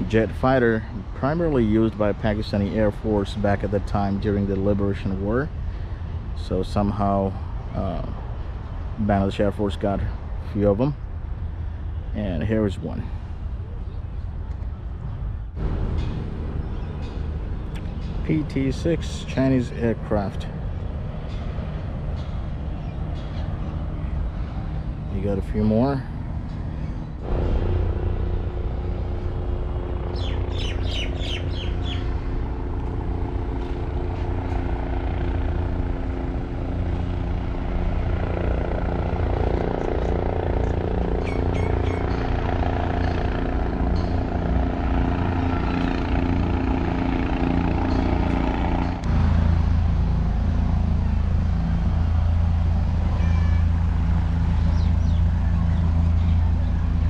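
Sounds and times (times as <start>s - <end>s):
helicopter drone: 0.0s - 57.0s
small birds chirping: 30.1s - 32.4s, 39.6s - 43.4s, 54.6s - 57.0s.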